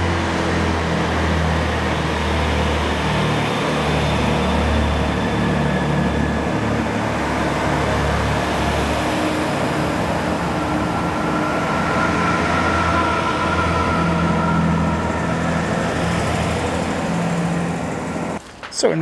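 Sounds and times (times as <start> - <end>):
train diesel engines droning: 0.0 - 18.4.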